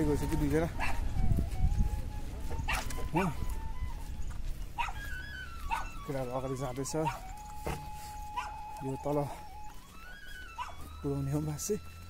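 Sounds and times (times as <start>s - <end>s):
dog barking: 0.8s - 1.0s, 2.7s - 3.3s, 4.8s - 5.1s, 5.7s - 6.0s, 7.0s - 7.3s, 8.3s - 8.6s, 10.6s - 10.8s.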